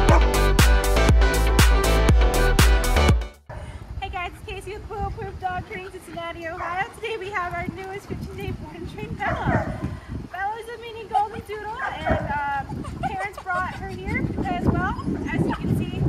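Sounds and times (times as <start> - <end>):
electronic music with steady beat: 0.0 - 3.4
puppy whining and yipping: 14.6 - 15.7.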